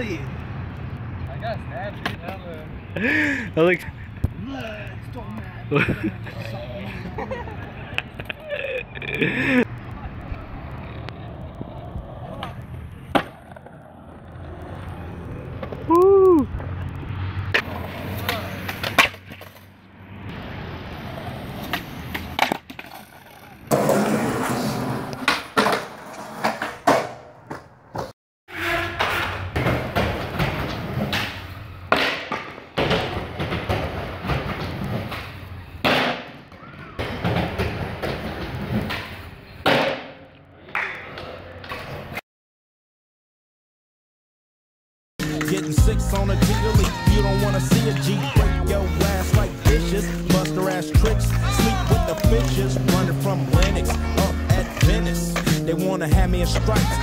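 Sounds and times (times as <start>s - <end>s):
skateboards rolling on concrete: 0.0s - 42.2s, 45.2s - 57.0s
skateboard clacks: 10.2s - 14.9s, 21.6s - 24.2s, 28.9s - 42.2s, 45.2s - 55.7s.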